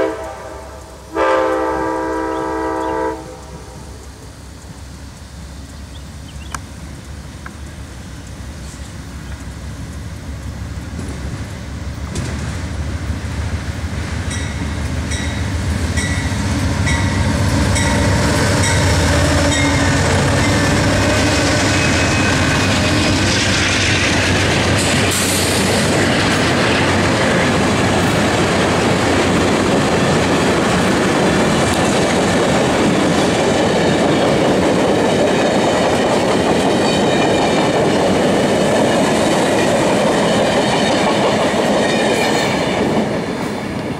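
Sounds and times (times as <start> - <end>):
diesel locomotive engines droning: 0.0 - 43.9
train wheels clattering on rails: 0.0 - 43.9.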